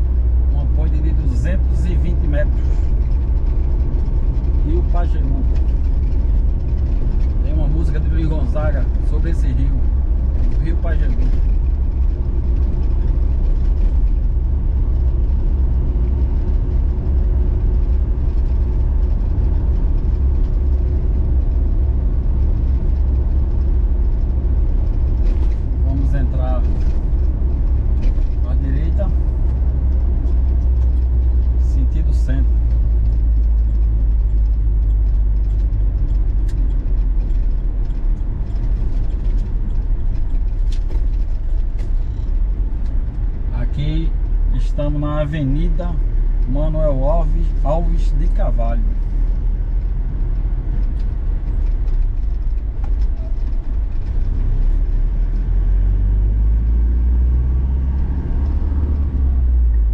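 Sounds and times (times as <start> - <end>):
vehicle engine and tyre rumble: 0.0 - 59.9.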